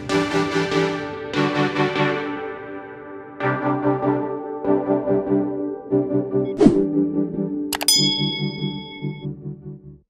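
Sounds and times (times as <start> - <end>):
bright bell ding: 7.8 - 9.3.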